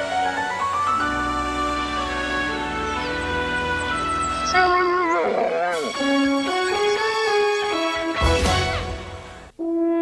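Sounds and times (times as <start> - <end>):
theme music: 0.0 - 9.6
dog howling: 4.5 - 6.5.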